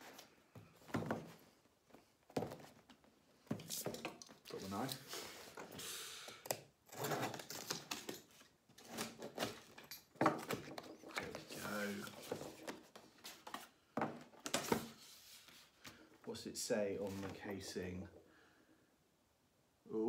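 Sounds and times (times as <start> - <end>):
cardboard flaps rustling: 10.3 - 16.0, 17.0 - 17.6.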